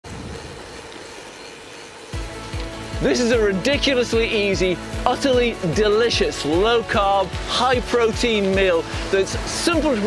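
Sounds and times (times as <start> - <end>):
bicycle tyres rolling on tarmac: 0.0 - 10.0.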